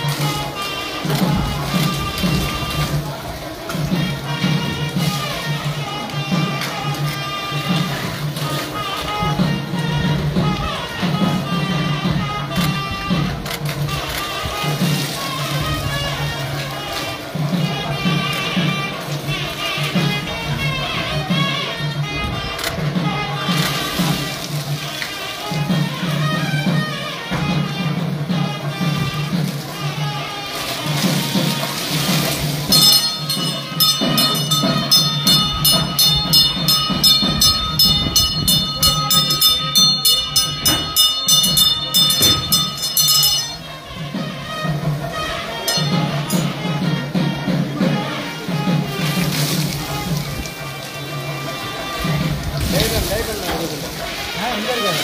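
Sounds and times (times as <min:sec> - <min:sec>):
rapid ringing of bells: 0:30.9 - 0:48.8
wavering melodic line: 0:32.7 - 0:44.0, 0:45.4 - 0:46.8.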